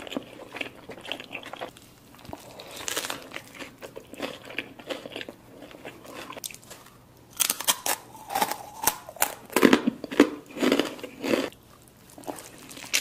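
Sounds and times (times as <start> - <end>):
close chewing with crackly crunches: 0.0 - 13.0
crisp tortilla chip crunching: 0.0 - 13.0.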